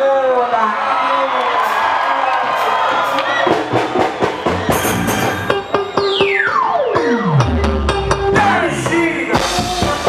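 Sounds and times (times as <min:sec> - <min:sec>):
crowd cheering and shouting: 0:00.0 - 0:10.0
loud live music: 0:01.6 - 0:10.0
sharp drum-like hits: 0:03.4 - 0:05.7.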